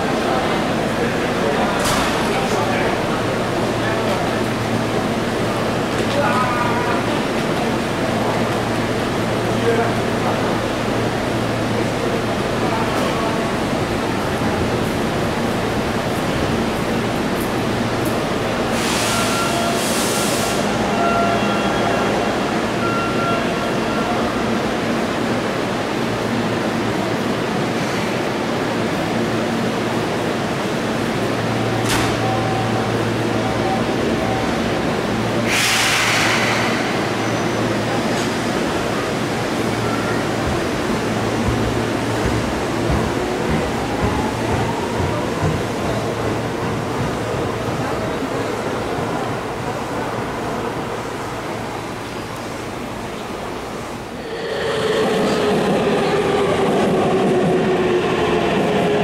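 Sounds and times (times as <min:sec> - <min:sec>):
crowd noise: 0:00.0 - 0:59.0.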